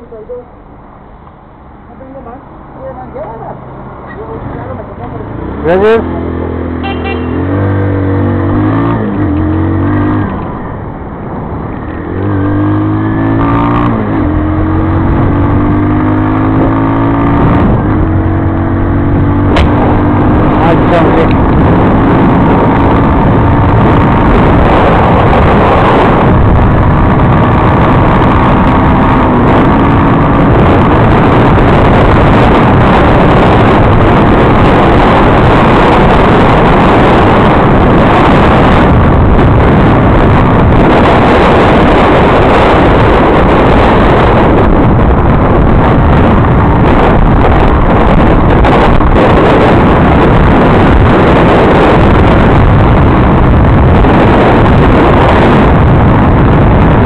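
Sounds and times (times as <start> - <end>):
wind rushing on microphone: 0.0 - 57.0
motorcycle engine accelerating: 5.2 - 57.0.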